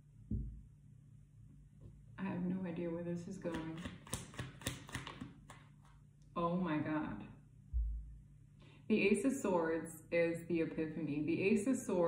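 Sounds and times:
cards being shuffled: 3.5 - 6.0.

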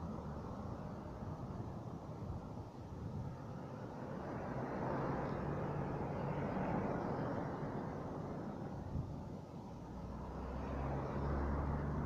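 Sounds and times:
distant car engine and tyres: 0.0 - 12.0.

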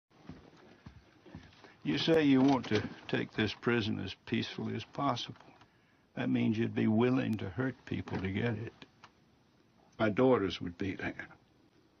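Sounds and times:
faint room noise: 0.1 - 12.0
man's voice: 1.8 - 5.4.

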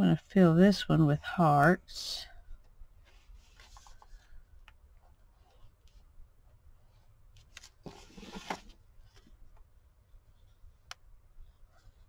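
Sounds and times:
paper rustling scrape: 7.8 - 8.8.

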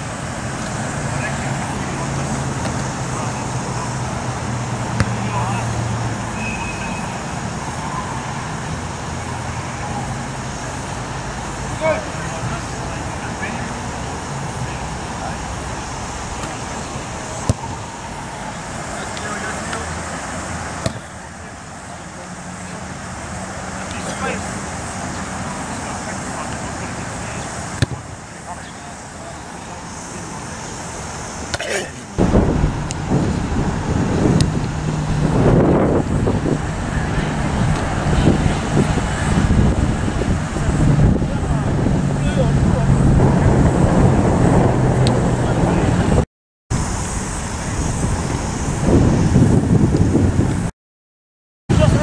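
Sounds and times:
distant voices: 0.0 - 46.2
road traffic noise: 0.0 - 50.7, 51.7 - 52.0.

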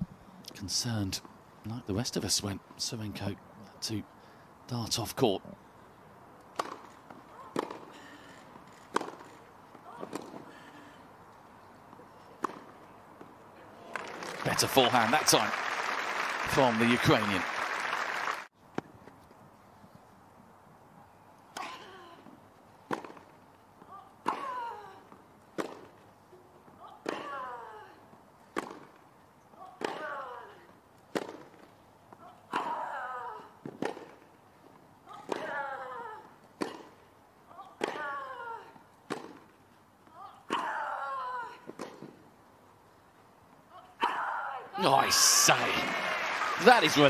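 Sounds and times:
tennis racket hitting ball: 6.6 - 6.9, 7.5 - 7.9, 8.9 - 9.4, 39.1 - 39.4.

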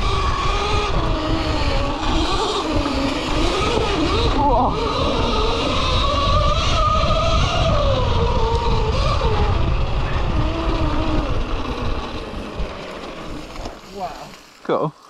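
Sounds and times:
electric motor whine: 0.0 - 14.6
low rumble of riding noise: 0.0 - 15.0.

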